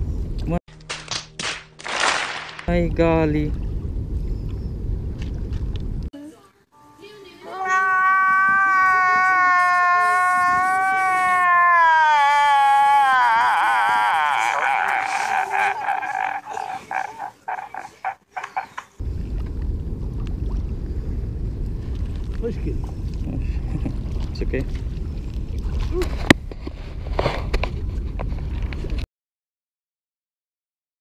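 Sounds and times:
wind noise on microphone: 2.7s - 6.1s, 7.9s - 11.8s, 19.0s - 29.0s
man wailing and sobbing: 8.8s - 18.1s.

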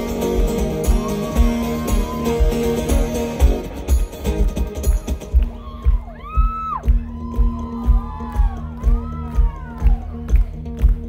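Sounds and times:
live band music: 0.0s - 11.0s
kick drum beat: 4.5s - 11.0s.

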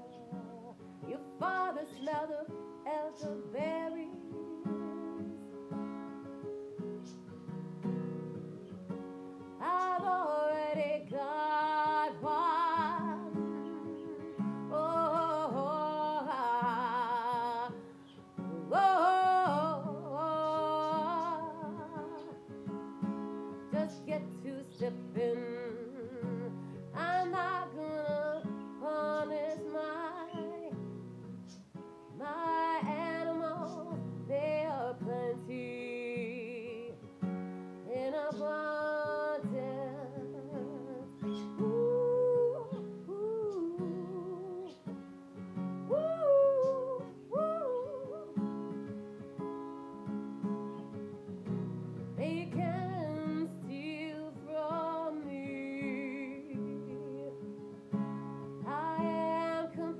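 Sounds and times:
woman singing: 0.0s - 6.0s, 9.6s - 31.0s, 31.6s - 45.0s, 45.8s - 49.0s, 52.2s - 59.9s
acoustic guitar chords: 0.0s - 59.9s.

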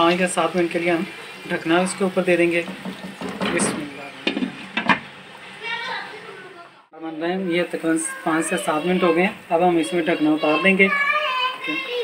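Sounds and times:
spatula shifting food in frying pan: 2.4s - 5.3s.

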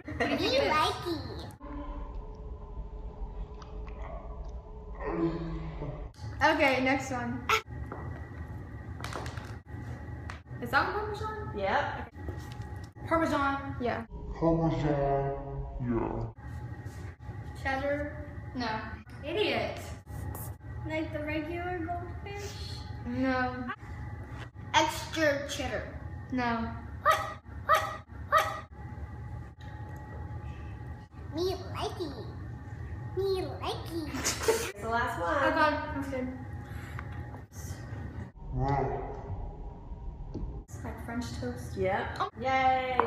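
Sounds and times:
low steady hum: 0.0s - 43.0s
dog barking: 27.0s - 28.7s.

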